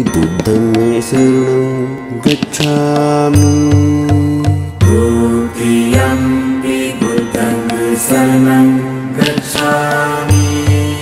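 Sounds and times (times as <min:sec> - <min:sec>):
instrumental music: 0:00.0 - 0:11.0
low beats: 0:00.0 - 0:11.0
mantra chanted in held notes: 0:00.0 - 0:11.0.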